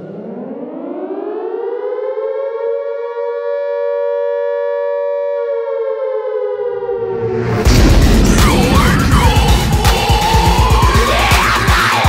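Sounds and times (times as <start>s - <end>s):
siren wail: 0.0s - 12.0s
low bass: 7.0s - 12.0s.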